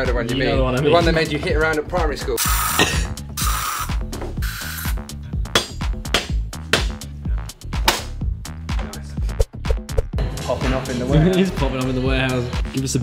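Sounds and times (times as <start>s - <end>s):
aerosol spray can hissing: 2.4s - 5.0s.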